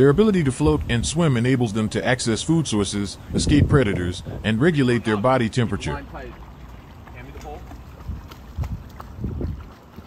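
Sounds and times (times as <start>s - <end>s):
wind buffeting microphone: 0.0s - 1.7s, 2.5s - 10.0s
animal splashing in water: 4.8s - 10.0s.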